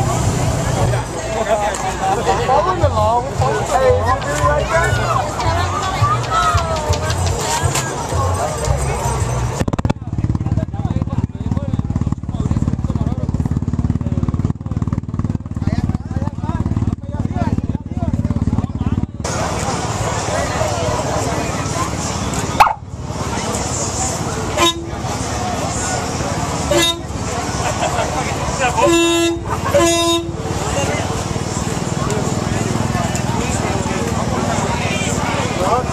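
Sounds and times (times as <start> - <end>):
crowd chatter: 0.0 - 35.9
race car engine pulsing: 0.0 - 35.9
vehicle horn blasts: 24.5 - 25.1, 26.7 - 27.2, 28.8 - 30.6.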